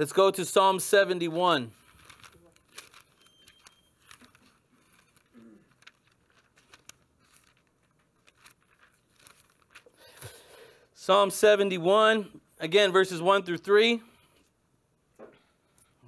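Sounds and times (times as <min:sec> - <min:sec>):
thin pages being turned: 0:01.9 - 0:09.9.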